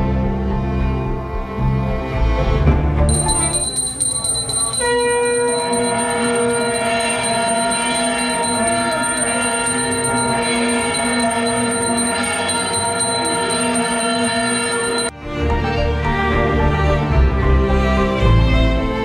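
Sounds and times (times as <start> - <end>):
hand bell ringing: 3.1 - 15.1.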